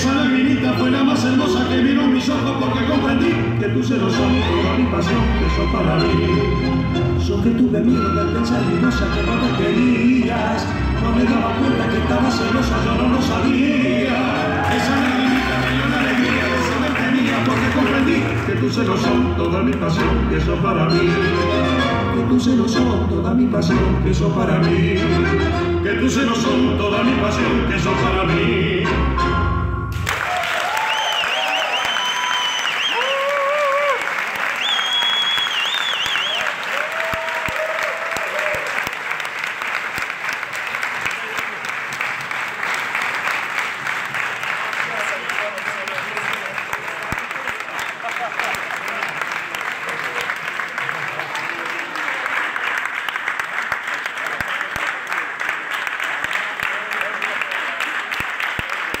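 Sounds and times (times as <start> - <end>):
audience applauding: 13.6 - 18.9, 29.9 - 59.0
cheers and whistles: 30.1 - 38.9.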